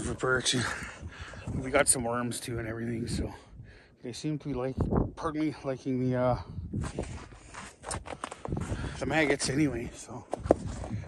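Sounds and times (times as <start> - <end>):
wind on microphone: 0.0 - 3.8, 4.4 - 11.0.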